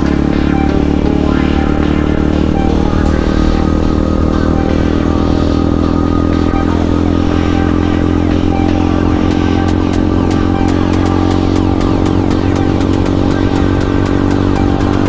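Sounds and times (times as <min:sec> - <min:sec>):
background music: 0:00.0 - 0:15.0
motorcycle engine running: 0:00.0 - 0:15.0.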